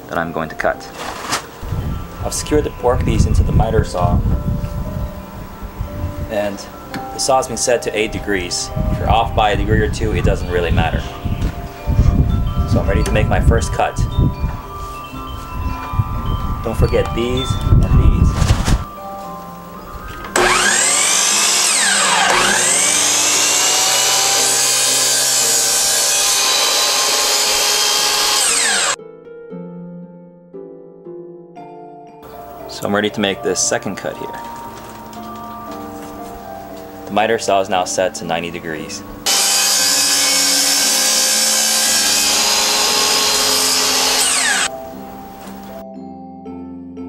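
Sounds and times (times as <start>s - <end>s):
soft background music: 0.0s - 23.2s, 29.0s - 39.3s, 44.2s - 47.0s
miter saw motor whining: 20.2s - 29.0s, 39.2s - 44.7s
saw blade cutting wood: 20.3s - 29.0s, 39.3s - 44.7s.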